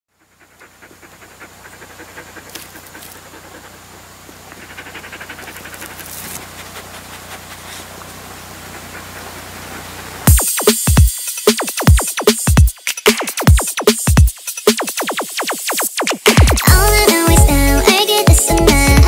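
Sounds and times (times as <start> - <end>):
electronic pop track: 16.1 - 19.0.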